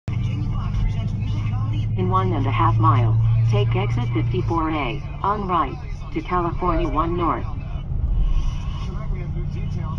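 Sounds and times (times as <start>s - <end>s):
car engine and tyres drone: 0.1s - 9.9s.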